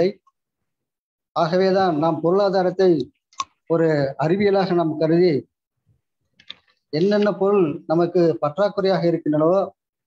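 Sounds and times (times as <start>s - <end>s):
man speaking over video call: 0.0s - 0.5s, 1.3s - 10.0s.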